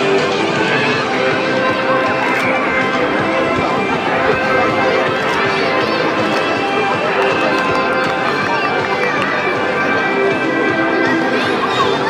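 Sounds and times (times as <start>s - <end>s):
background music: 0.0s - 12.0s
children shouting and cheering: 0.0s - 12.0s.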